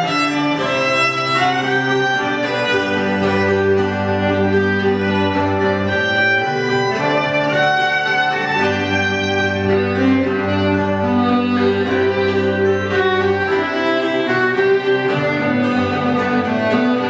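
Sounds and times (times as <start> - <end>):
cello low notes: 0.0 - 17.0
fiddle melody: 0.0 - 17.0.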